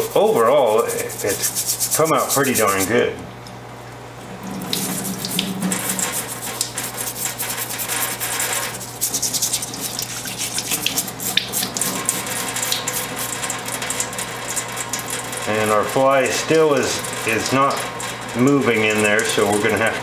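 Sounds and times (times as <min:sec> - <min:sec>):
tap water running into sink: 0:04.3 - 0:20.0.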